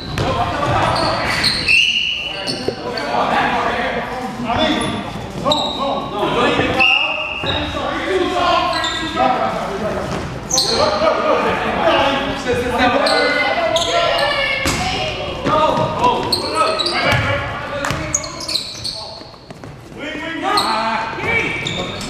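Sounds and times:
short high squeaks: 1.0 - 3.1.

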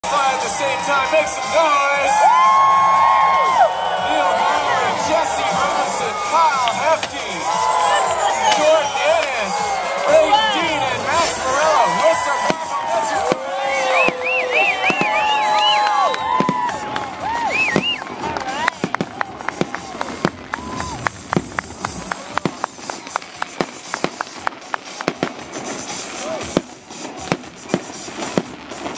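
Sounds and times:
crowd whooping and cheering: 0.0 - 26.6
fireworks crackling pops: 8.4 - 28.9.

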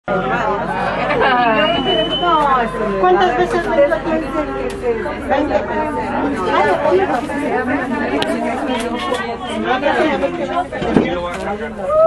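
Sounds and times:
people talking: 0.0 - 12.0
thin steady high tone: 1.1 - 4.2.

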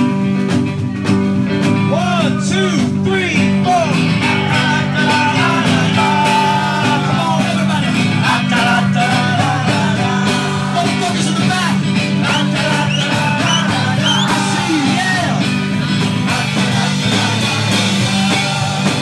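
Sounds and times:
live guitar band playing: 0.0 - 19.0
crowd singing along: 2.4 - 19.0.

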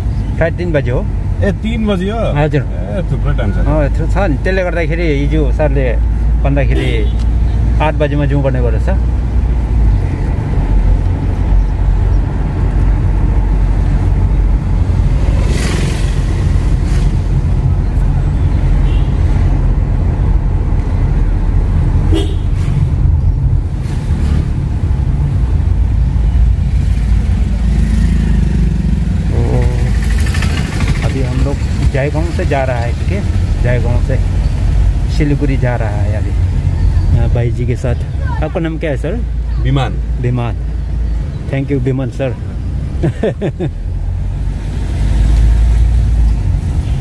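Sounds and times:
car engine and road rumble: 0.0 - 47.0
traffic sounds: 0.0 - 47.0.

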